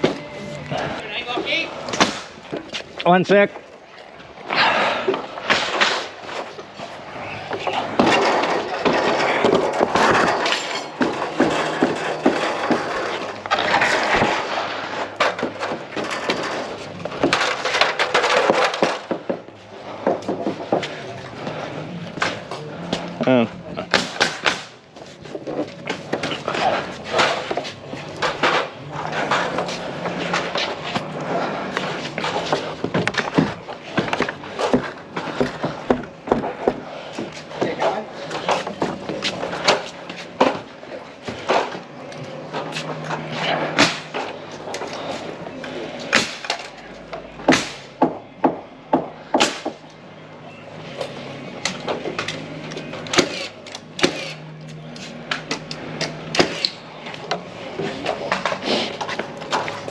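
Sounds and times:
indistinct voices: 0:00.0 - 0:02.0, 0:20.1 - 0:24.1
timber frames clattering: 0:05.5 - 0:21.1.

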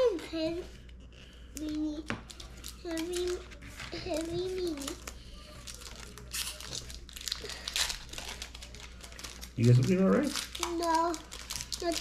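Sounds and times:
trading cards crinkling and rustling: 0:00.8 - 0:12.0.

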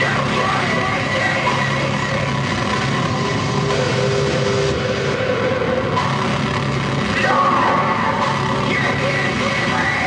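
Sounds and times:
harsh electronic noise: 0:00.0 - 0:10.0
steady low drone: 0:00.0 - 0:10.0.

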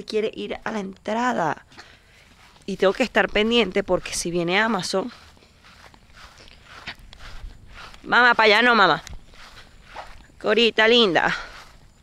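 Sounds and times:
footsteps on grass: 0:01.7 - 0:12.0.

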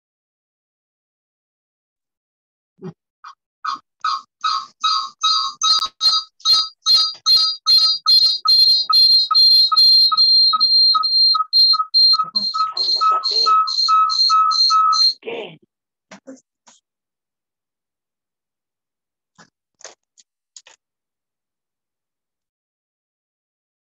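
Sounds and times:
pulsing high whistle-like tone: 0:04.1 - 0:15.2.

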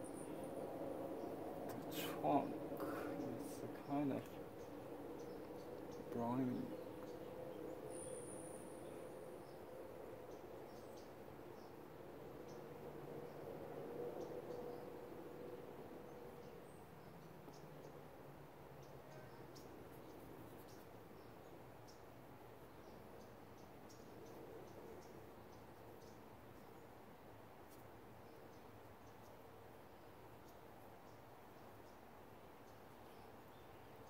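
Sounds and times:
steady low hum: 0:00.0 - 0:32.1.

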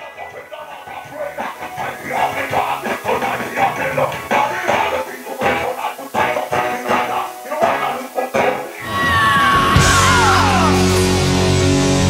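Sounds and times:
heavy rock music: 0:00.0 - 0:12.0.

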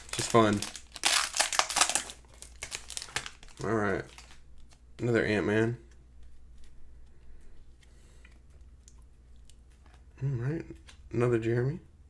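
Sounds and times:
foil wrapper tearing and crinkling: 0:00.0 - 0:04.4.

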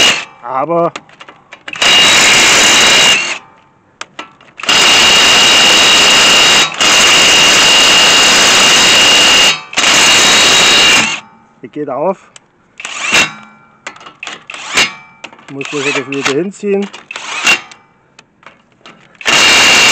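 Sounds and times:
steady high whine: 0:00.0 - 0:19.9
impact wrench hammering: 0:01.6 - 0:11.4, 0:12.8 - 0:19.9.

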